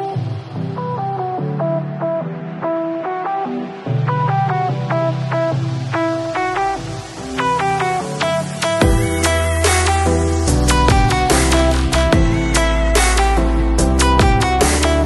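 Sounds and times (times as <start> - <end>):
low bass line: 6.2 - 15.0.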